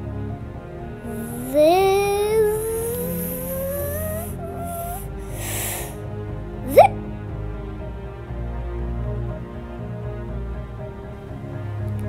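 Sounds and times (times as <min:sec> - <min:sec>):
background music: 0:00.0 - 0:12.0
child's rising vocal note: 0:01.1 - 0:05.5, 0:06.7 - 0:06.9.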